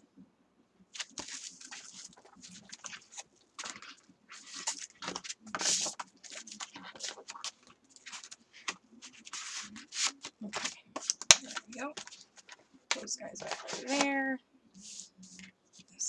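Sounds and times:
plastic sheet and paper crinkling: 1.0 - 14.2.

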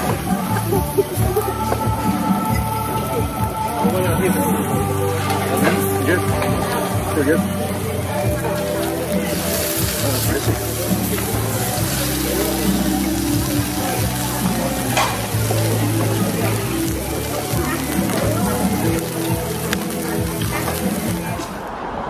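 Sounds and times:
meat sizzling on a grill: 0.0 - 21.4
background music: 0.0 - 22.0.

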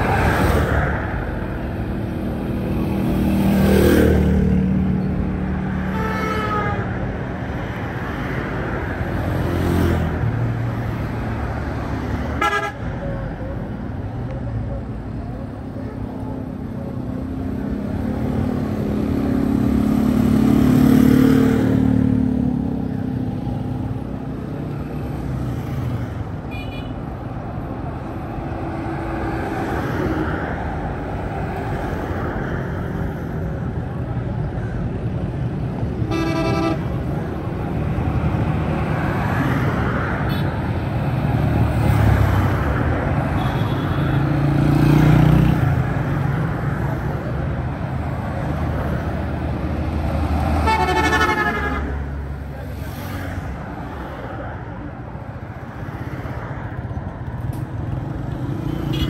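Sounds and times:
vehicle engines passing: 0.0 - 59.0
car horn toots: 36.1 - 36.9, 50.6 - 51.9.

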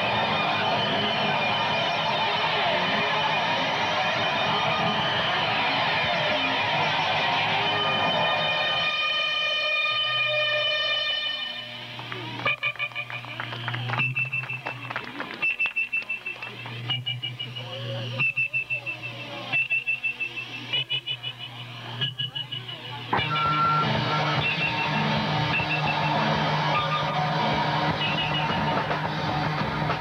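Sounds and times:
punk band playing live: 0.0 - 8.5, 23.1 - 30.0
guitar feedback whine: 0.0 - 30.0
guitar stabs: 0.0 - 30.0.

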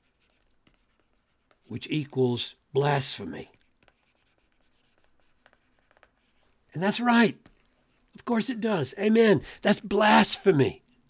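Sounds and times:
stylus scratching on tablet: 0.0 - 2.4, 3.0 - 8.3.

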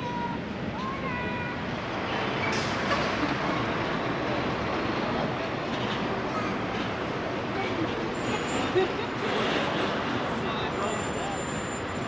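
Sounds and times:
chatter of passers-by: 0.0 - 12.0
traffic noise: 0.0 - 12.0.

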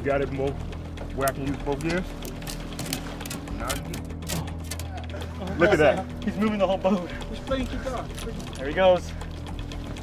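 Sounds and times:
boat engine idling: 0.0 - 10.0.

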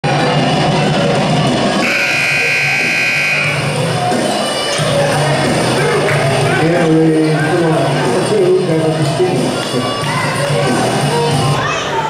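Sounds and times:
music over sound system: 0.1 - 11.6
scoreboard horn: 1.8 - 3.8.

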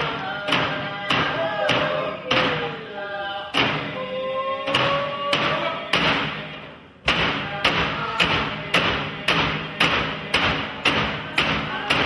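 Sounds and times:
frame drums beating: 4.6 - 12.0.

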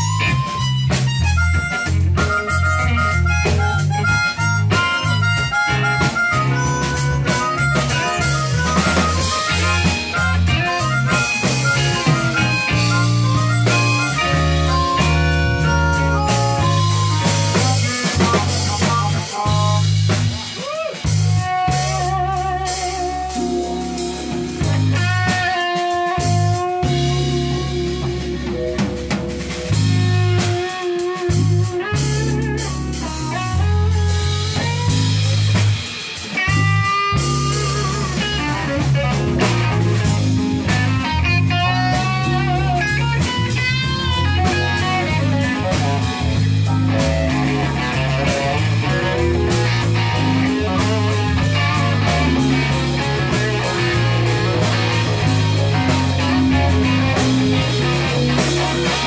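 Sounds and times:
saxophone: 0.0 - 28.7
bass line: 0.0 - 59.0
drum kit: 0.0 - 59.0
electric piano: 0.0 - 59.0
guitar: 0.0 - 59.0.

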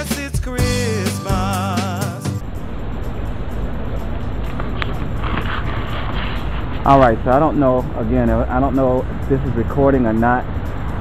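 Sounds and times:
background music: 0.0 - 11.0
muffled background rumble: 2.4 - 11.0.

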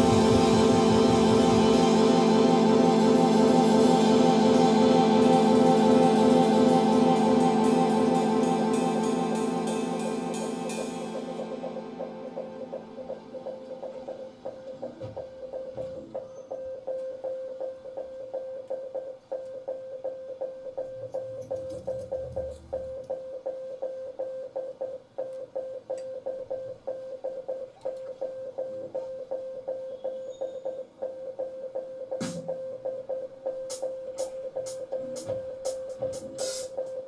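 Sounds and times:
low bass notes: 0.0 - 15.7
pulsing electronic note: 0.0 - 37.0.

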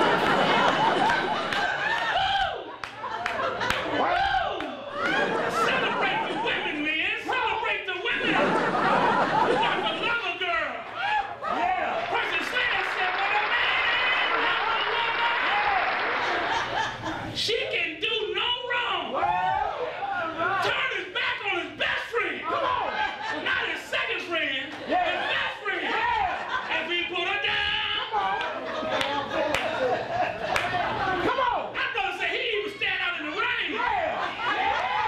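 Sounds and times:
audience applauding: 0.0 - 5.3, 11.6 - 17.0, 28.4 - 31.0
voices: 3.4 - 35.0
man talking into microphone: 5.4 - 8.6, 9.6 - 10.9, 17.3 - 19.2, 20.3 - 28.4, 31.2 - 34.3.

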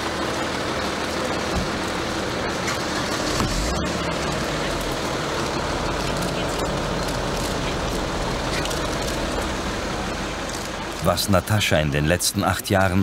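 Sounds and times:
traffic noise: 0.0 - 13.0.

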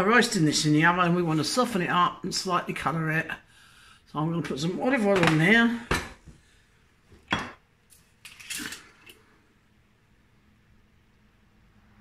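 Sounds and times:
kitchenware clinking: 7.2 - 7.6.

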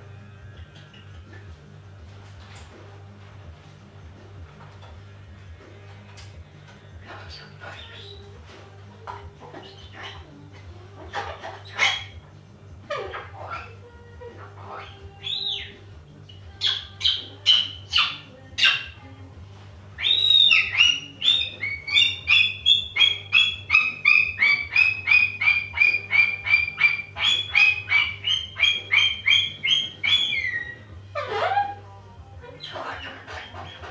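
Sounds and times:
faint background music: 0.0 - 33.9
cockatoo calling: 5.9 - 19.0, 20.0 - 33.9.

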